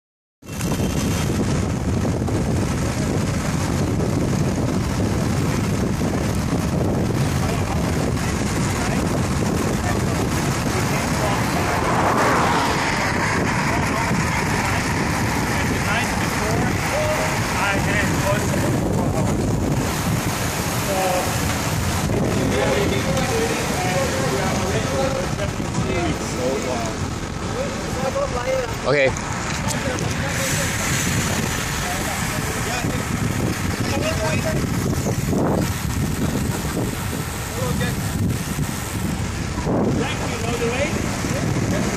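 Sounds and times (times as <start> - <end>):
road noise: 0.4 - 41.9
wind rushing over microphone: 0.4 - 41.9
faint voices: 7.2 - 20.0, 20.6 - 38.4.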